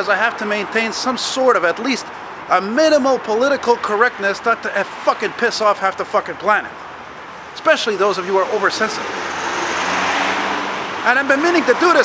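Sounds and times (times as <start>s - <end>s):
vehicle passing close by: 8.0s - 12.0s.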